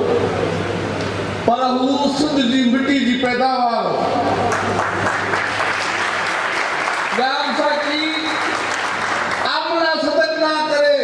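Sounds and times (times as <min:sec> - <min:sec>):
audience applauding: 0:04.2 - 0:09.9
man speaking: 0:07.2 - 0:08.4.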